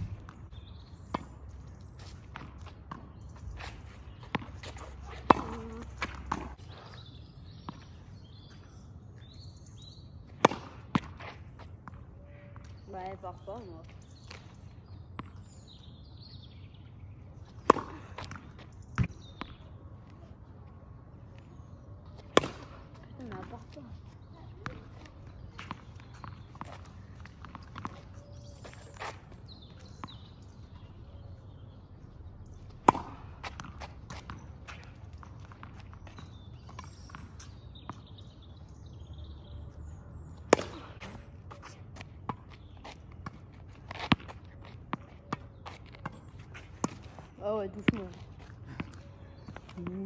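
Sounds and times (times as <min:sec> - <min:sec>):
ball bouncing on asphalt: 0:00.0 - 0:20.3, 0:21.3 - 0:50.0
tennis racket hitting ball: 0:04.1 - 0:06.6, 0:22.3 - 0:23.6, 0:32.8 - 0:34.9.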